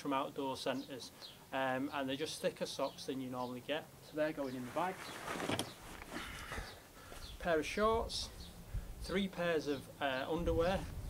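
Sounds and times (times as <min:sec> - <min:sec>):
fabric rustling: 0:04.5 - 0:07.4.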